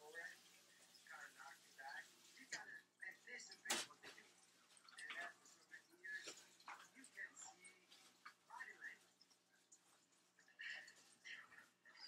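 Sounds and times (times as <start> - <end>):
faint distant sounds: 0.0 - 12.0.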